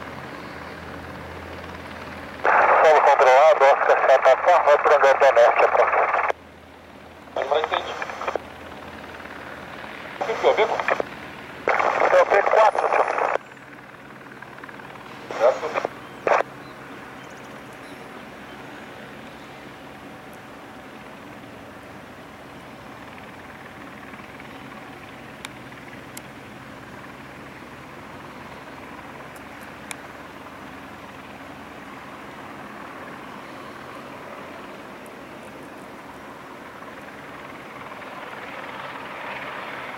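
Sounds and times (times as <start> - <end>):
helicopter rotor and turbine: 0.0 - 39.9
steady low hum: 0.0 - 39.9
person speaking over radio: 2.4 - 6.4, 7.3 - 8.4, 10.2 - 11.1, 11.7 - 13.4, 15.2 - 16.5.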